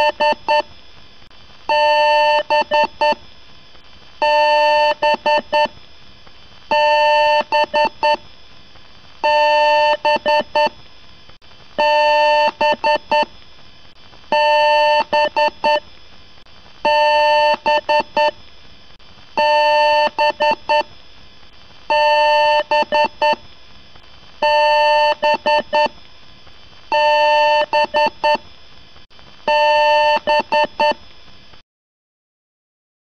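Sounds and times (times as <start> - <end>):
faint steady hiss: 0.0 - 31.6.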